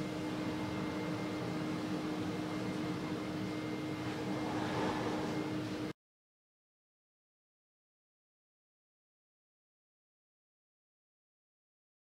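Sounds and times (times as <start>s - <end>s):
electrical hum: 0.0s - 6.0s.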